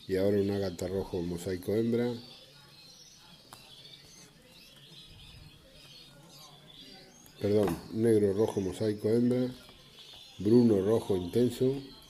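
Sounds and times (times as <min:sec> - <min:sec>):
canaries chirping: 0:00.0 - 0:12.0.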